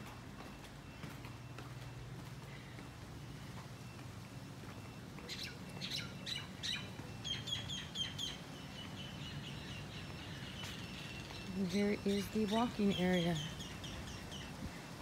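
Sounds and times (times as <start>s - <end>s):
birds chirping: 0.0s - 15.0s.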